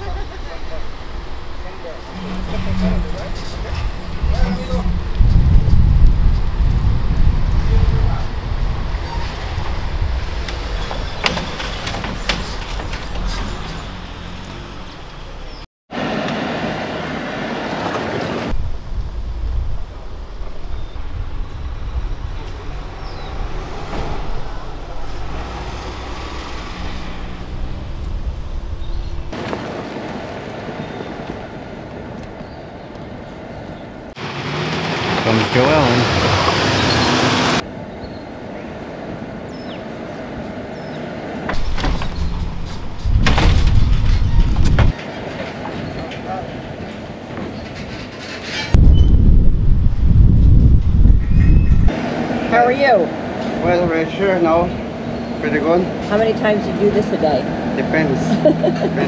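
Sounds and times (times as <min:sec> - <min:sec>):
car and road noise: 0:00.0 - 0:59.0
car engine and tyre noise: 0:00.0 - 0:59.0.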